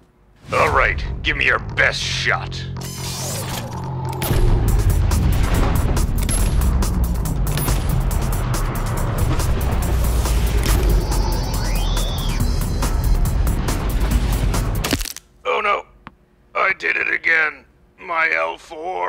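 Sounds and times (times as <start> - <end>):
heavy low rumble: 0.4 - 2.8, 3.7 - 14.8
dramatic music score: 0.4 - 15.2.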